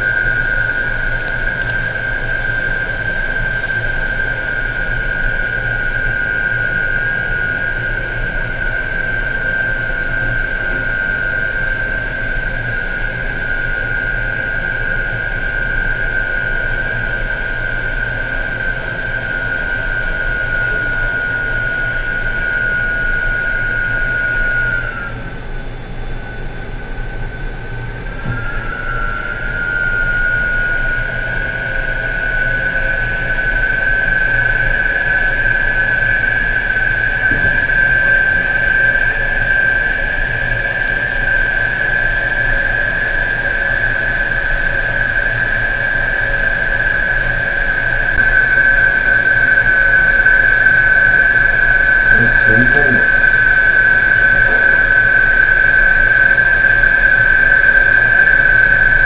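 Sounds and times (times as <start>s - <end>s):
crane machinery high-pitched whine: 0.0s - 59.0s
low machinery hum: 0.0s - 59.0s.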